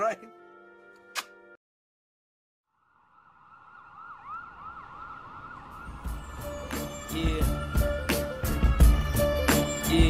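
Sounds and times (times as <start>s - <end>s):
siren yelping: 3.3s - 6.7s.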